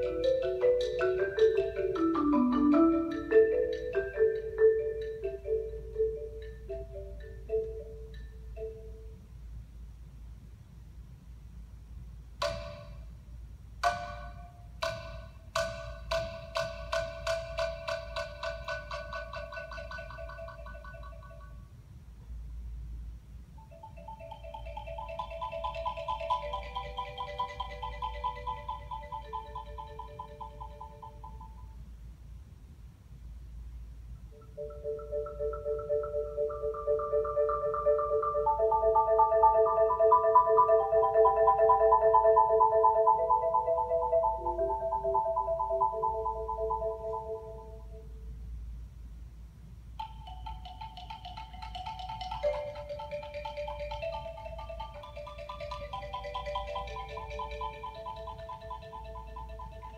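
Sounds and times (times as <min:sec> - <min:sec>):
solo marimba playing: 0:00.0 - 0:09.2, 0:13.8 - 0:21.6, 0:23.6 - 0:31.8, 0:34.3 - 0:48.2, 0:50.0 - 0:59.9.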